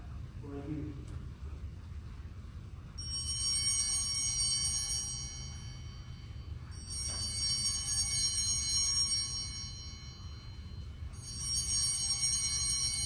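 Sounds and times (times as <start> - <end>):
steady low hum: 0.0 - 13.0
altar bells ringing: 3.0 - 13.0.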